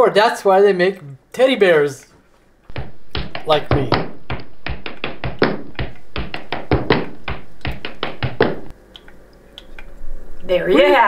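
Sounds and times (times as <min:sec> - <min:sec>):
fast sharp taps: 0:02.7 - 0:09.1.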